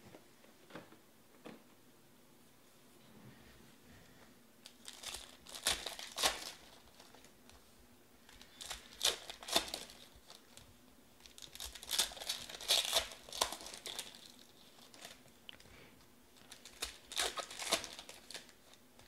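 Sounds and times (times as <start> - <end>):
foil wrapper crinkling and tearing: 4.6 - 7.3, 8.2 - 15.3, 16.4 - 19.0.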